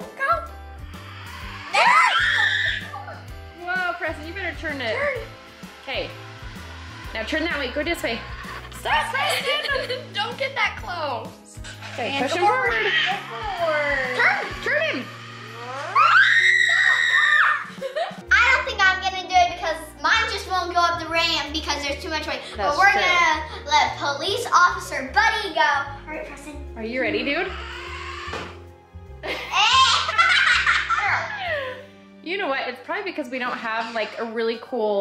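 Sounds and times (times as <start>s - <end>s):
background music: 0.0s - 35.0s
child screaming: 1.5s - 3.2s, 12.4s - 15.0s, 15.6s - 17.7s, 27.4s - 28.5s, 29.5s - 30.2s
children laughing loudly: 1.6s - 3.2s, 8.4s - 10.3s, 12.4s - 14.4s, 15.9s - 18.2s, 29.2s - 31.8s.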